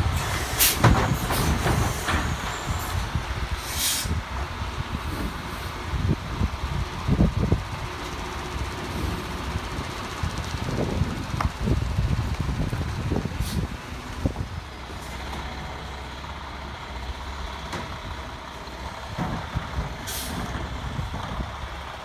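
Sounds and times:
air brakes hissing: 0:00.0 - 0:04.2, 0:13.4 - 0:13.8, 0:20.0 - 0:20.5
diesel engine rumbling: 0:00.0 - 0:22.0
truck arm setting cart down: 0:00.2 - 0:02.9.

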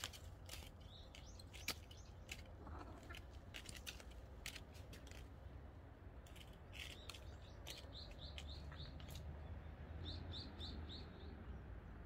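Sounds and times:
twigs clicking: 0:00.0 - 0:05.5, 0:06.2 - 0:09.3
small bird chirping: 0:00.5 - 0:03.3, 0:06.7 - 0:11.7.

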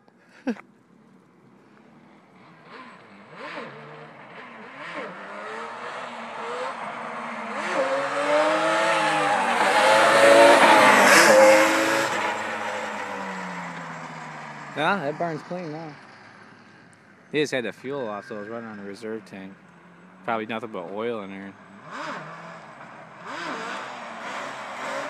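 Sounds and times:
quad engine revving hard: 0:02.6 - 0:13.8, 0:21.8 - 0:25.0.

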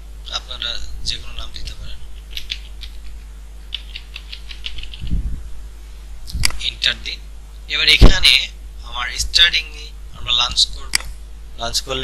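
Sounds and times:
keyboard keys clicking: 0:02.2 - 0:03.0, 0:03.7 - 0:05.0.

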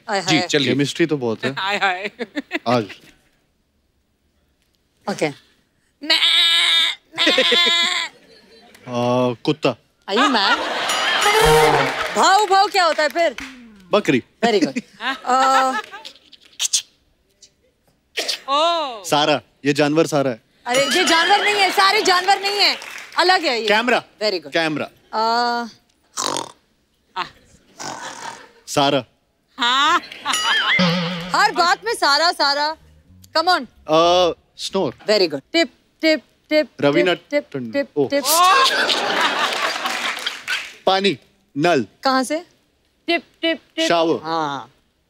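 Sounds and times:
woman imitating goat bleats: 0:06.0 - 0:08.1, 0:30.8 - 0:31.8
person imitating snoring: 0:27.8 - 0:28.4.

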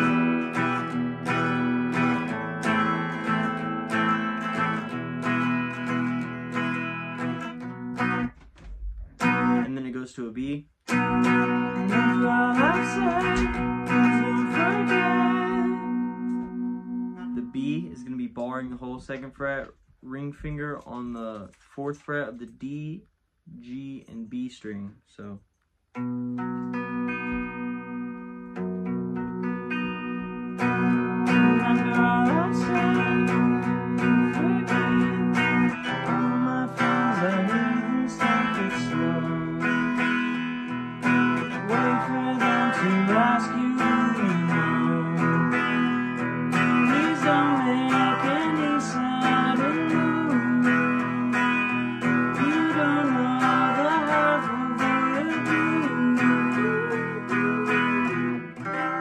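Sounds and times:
guitar strumming chords: 0:00.0 - 0:59.0
man singing: 0:09.3 - 0:16.2, 0:17.2 - 0:21.3, 0:31.0 - 0:40.4, 0:41.4 - 0:59.0.

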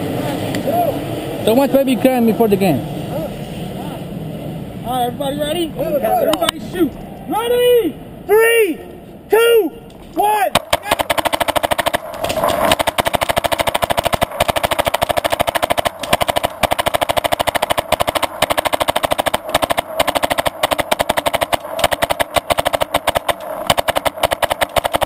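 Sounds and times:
paintball markers firing: 0:10.5 - 0:25.0.

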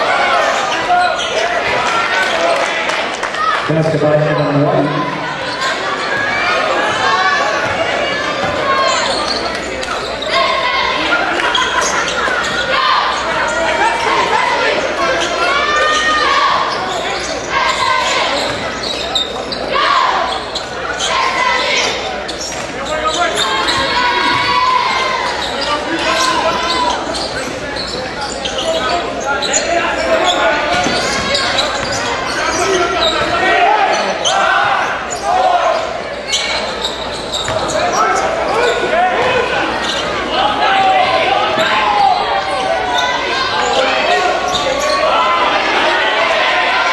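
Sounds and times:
echoing voices in hall: 0:00.0 - 0:46.9.

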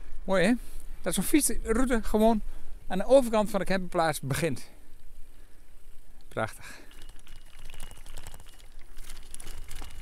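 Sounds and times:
bicycle tyres crackling over leaves: 0:06.6 - 0:10.0
wind rumbling on microphone: 0:06.8 - 0:10.0.

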